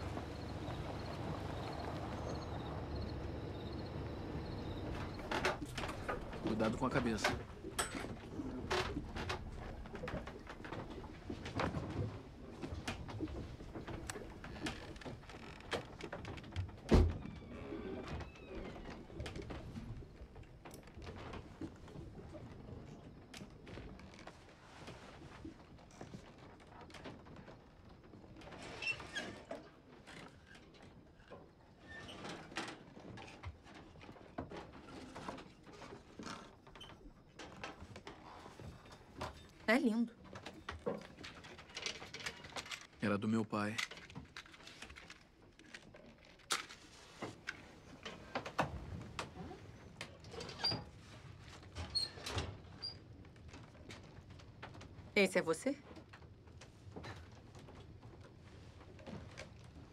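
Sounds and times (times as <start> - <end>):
creaks: 0.0 - 59.9.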